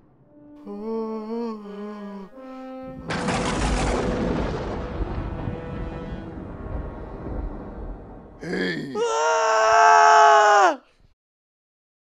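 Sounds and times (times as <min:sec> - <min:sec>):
person wailing high-pitched: 0:00.7 - 0:02.4, 0:08.4 - 0:10.8
person whimpering: 0:00.7 - 0:02.4, 0:08.4 - 0:09.1.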